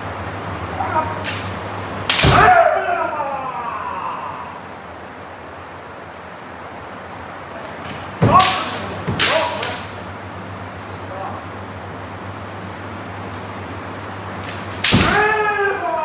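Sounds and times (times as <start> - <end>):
person shouting: 0.7 - 1.2, 2.2 - 4.7, 15.0 - 16.0
bamboo sword strikes: 2.1 - 2.6, 8.2 - 9.9, 14.8 - 15.4.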